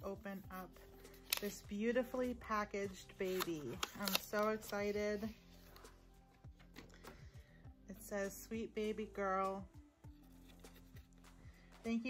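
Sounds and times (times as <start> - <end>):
faint background music: 0.0 - 12.0
paper card rustling: 0.9 - 1.6, 2.9 - 7.2, 10.2 - 11.4.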